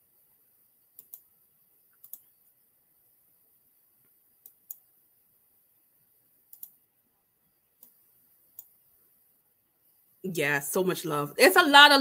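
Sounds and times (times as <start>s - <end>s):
faint clicks: 1.0s - 1.3s, 1.9s - 2.3s, 6.5s - 6.8s.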